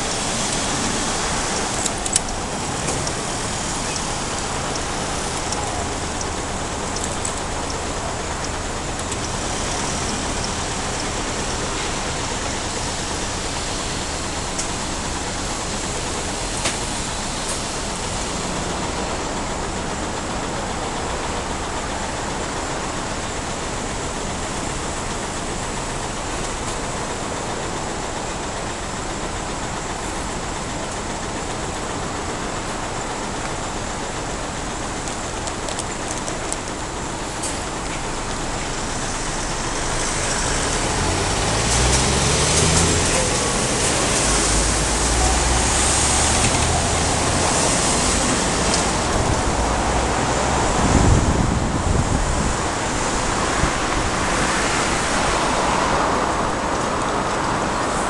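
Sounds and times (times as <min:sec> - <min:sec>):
city road traffic: 0:00.0 - 0:58.0
engine accelerating: 0:38.1 - 0:58.0.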